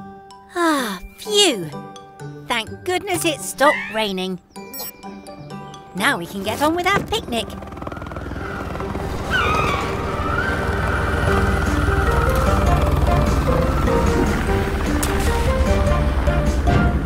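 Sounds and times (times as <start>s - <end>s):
background music with stepping melody: 0.0s - 8.0s, 11.1s - 17.0s
helicopter rotor rumble: 5.5s - 17.0s.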